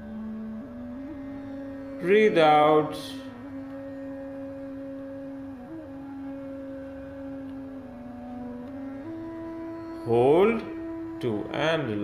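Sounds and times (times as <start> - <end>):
soft music of long held tones: 0.0 - 12.0.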